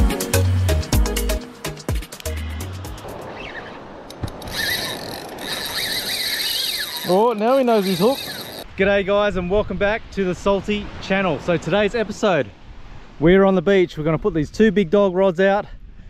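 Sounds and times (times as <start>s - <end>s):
music: 0.0s - 3.2s
fishing reel drag screaming: 4.4s - 8.7s.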